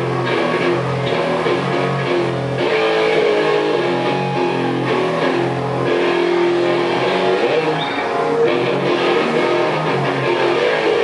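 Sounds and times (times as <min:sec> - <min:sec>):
live band with electric guitars: 0:00.0 - 0:11.0.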